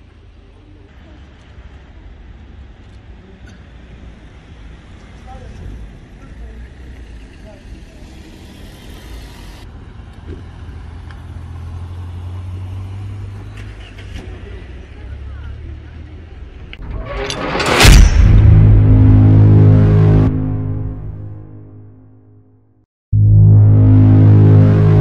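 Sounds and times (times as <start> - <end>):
car driving past: 6.7 - 10.0
rising whoosh effect: 16.8 - 22.0.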